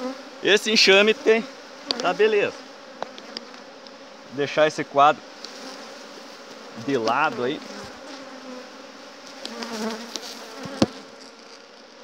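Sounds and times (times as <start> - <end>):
bee flying close by: 0.0 - 12.0
bees buzzing: 0.0 - 12.0.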